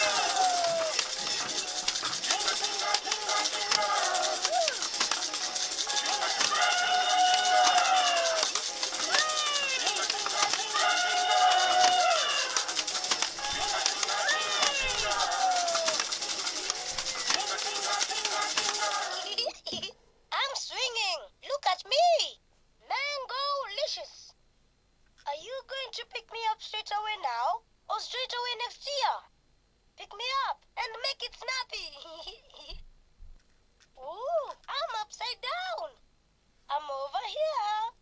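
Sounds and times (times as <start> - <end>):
toy playing song with singing: 0.0 - 19.4
toy maracas shaking: 0.0 - 19.5.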